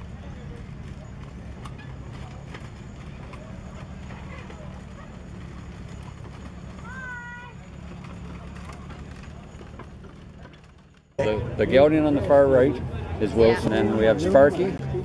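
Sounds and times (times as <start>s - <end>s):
harness clinking: 0.0s - 12.7s.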